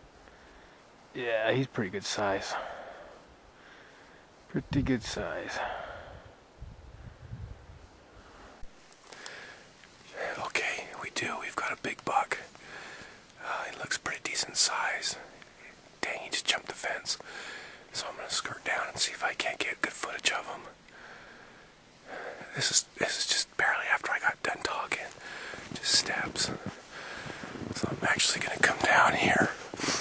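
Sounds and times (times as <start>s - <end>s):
man whispering: 1.1s - 3.2s, 4.5s - 6.3s, 10.1s - 12.6s, 13.4s - 17.3s, 17.9s - 20.8s, 22.0s - 30.0s.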